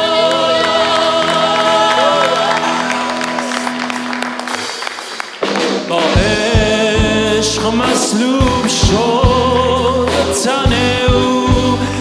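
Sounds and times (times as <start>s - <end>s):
worship band playing slow song: 0.0s - 12.0s
heavy low hits: 6.2s - 11.8s
sustained keyboard chords: 6.2s - 12.0s.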